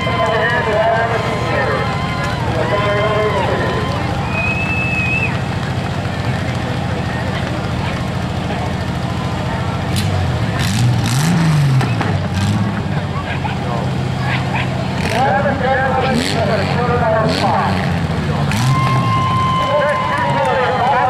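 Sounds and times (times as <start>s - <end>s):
car engine revving: 0.0s - 21.0s
car engines idling: 0.0s - 21.0s
people's voices: 0.0s - 21.0s.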